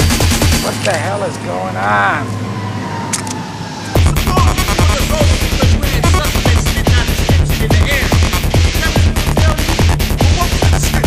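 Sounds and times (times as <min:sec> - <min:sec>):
driving kick drum: 0:00.0 - 0:00.7, 0:04.0 - 0:11.0
noisy synth wash: 0:00.0 - 0:01.5, 0:02.2 - 0:11.0
sampled voice: 0:04.0 - 0:11.0.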